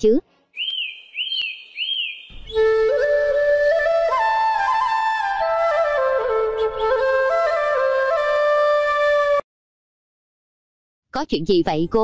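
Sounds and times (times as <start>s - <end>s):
bird whistled call: 0.6s - 5.1s
flute melody: 2.4s - 9.4s.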